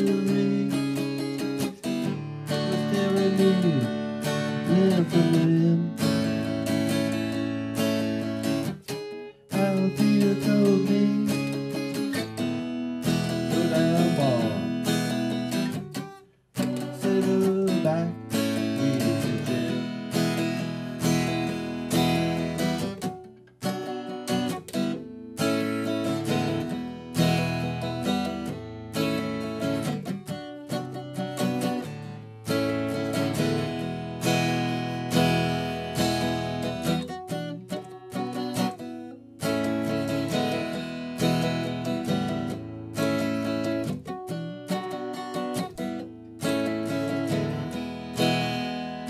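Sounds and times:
acoustic guitar strummed chords: 0.0 - 49.0.

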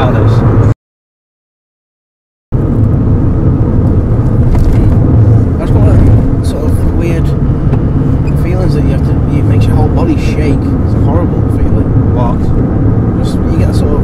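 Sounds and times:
car cabin road rumble: 0.0 - 0.7, 2.5 - 14.0.

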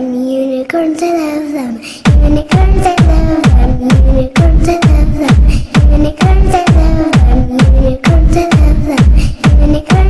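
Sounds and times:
booming kick drum: 2.0 - 10.0.

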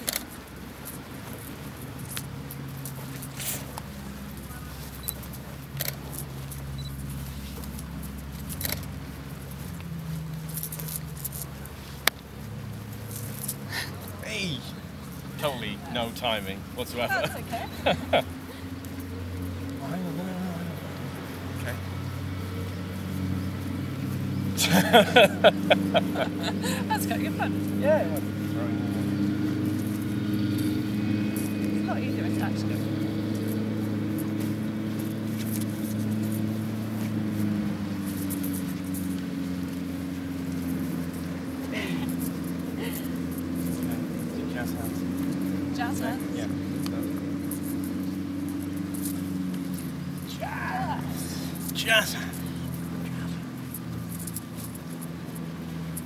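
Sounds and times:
low steady rumble: 0.0 - 56.0
motor-like low hum with tones: 0.0 - 56.0
footsteps on grass: 0.3 - 31.8
faint voices: 13.7 - 22.6, 24.5 - 29.3
person laughing: 17.0 - 18.3, 24.6 - 27.5, 41.7 - 42.1, 42.8 - 43.2.

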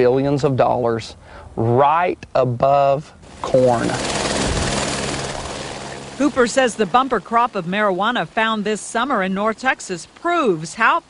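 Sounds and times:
helicopter flying by: 3.2 - 9.3.

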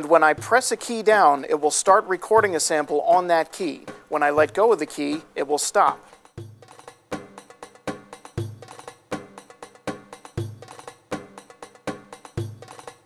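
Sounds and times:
drum loop with percussion hits: 0.0 - 13.0
deep kick drum: 6.4 - 12.8.

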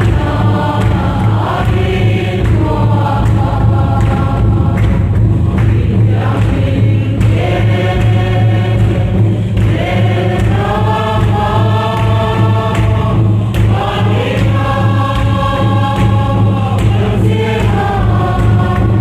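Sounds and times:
congregation singing a hymn: 0.0 - 19.0
steady low hum: 0.0 - 19.0.

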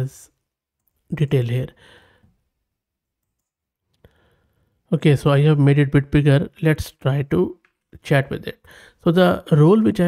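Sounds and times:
man speaking: 0.0 - 0.4, 1.0 - 1.8, 4.9 - 10.0.

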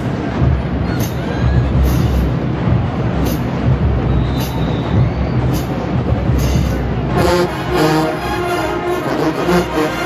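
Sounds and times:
drumline low drum hits: 0.0 - 9.8.

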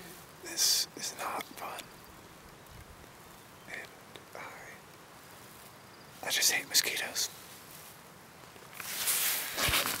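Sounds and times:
fabric rustling on microphone: 8.7 - 10.0.

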